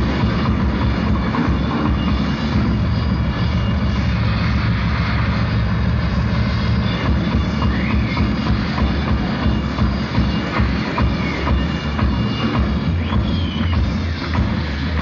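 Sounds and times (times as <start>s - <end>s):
rock band playing: 0.0s - 4.1s, 5.5s - 15.0s.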